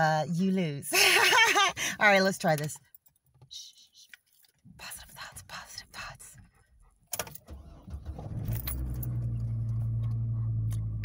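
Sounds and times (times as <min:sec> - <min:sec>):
keys rattling in ignition: 0:02.2 - 0:03.5, 0:04.1 - 0:05.8, 0:07.1 - 0:11.0
truck engine cranking and idling: 0:07.2 - 0:11.0.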